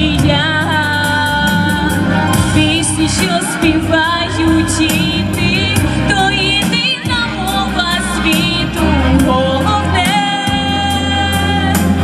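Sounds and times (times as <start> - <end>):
amplified instrumental accompaniment: 0.0 - 12.0
woman singing pop song: 0.0 - 12.0.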